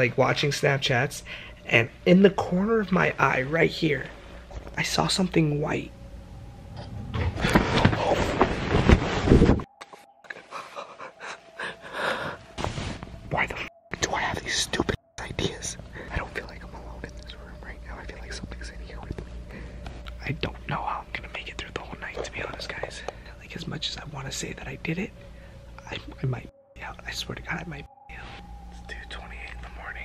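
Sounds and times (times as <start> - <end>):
faint steady hum: 0.0 - 30.0
man whispering: 7.5 - 8.7, 13.3 - 25.2, 25.8 - 30.0.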